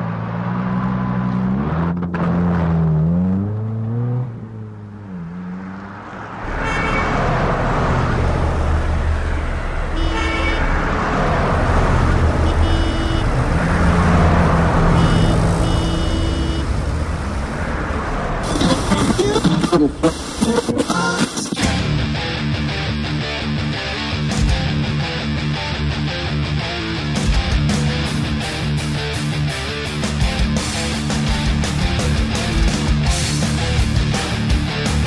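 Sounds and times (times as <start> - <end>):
engine revving: 0.0 - 20.7
traffic rumble: 0.0 - 35.0
car horn honks: 6.5 - 7.3, 9.9 - 10.8, 12.3 - 13.4, 14.9 - 16.8.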